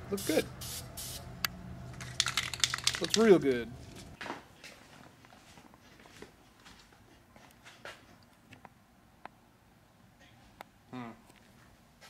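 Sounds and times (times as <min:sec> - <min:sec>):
aerosol spray hiss: 0:00.2 - 0:01.2.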